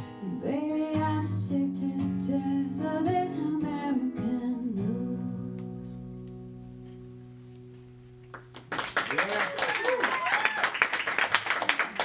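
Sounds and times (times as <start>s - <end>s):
people clapping: 8.2s - 12.0s.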